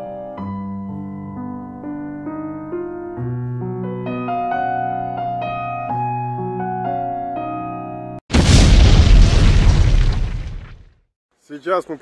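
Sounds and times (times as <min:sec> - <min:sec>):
explosion boom: 0:08.3 - 0:11.0.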